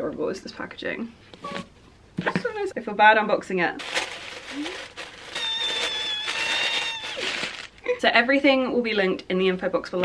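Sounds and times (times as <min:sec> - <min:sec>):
tissue paper rustling: 0:03.8 - 0:07.8.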